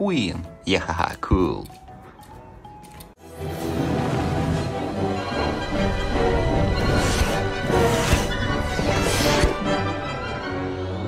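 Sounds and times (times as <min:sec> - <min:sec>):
dramatic film music: 0:00.0 - 0:11.0.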